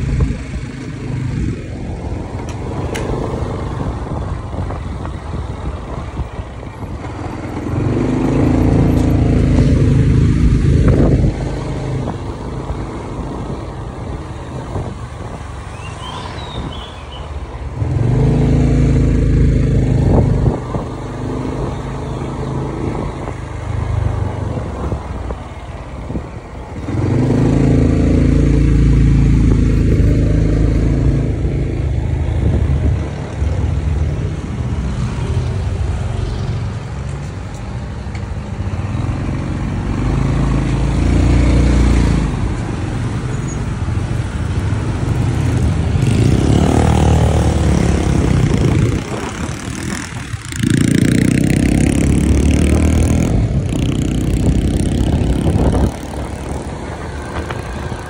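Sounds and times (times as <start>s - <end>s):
wind noise: 0.0s - 58.0s
motorbike engine: 38.7s - 58.0s.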